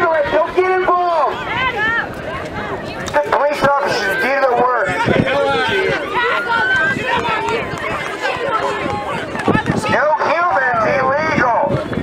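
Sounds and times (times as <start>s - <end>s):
people shouting and talking: 0.0s - 12.0s.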